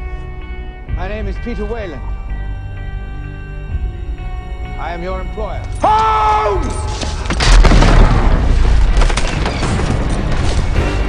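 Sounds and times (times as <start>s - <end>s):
film music: 0.0s - 11.0s
explosion boom and rumble: 7.2s - 11.0s.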